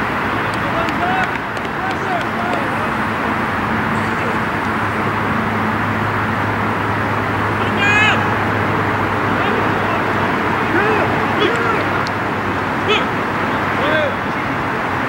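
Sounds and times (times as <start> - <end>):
low outdoor hum: 0.0 - 14.6
players calling out: 0.3 - 6.9, 7.5 - 14.5
loud shout: 0.6 - 5.0, 7.6 - 8.4, 9.3 - 12.0, 12.8 - 14.2.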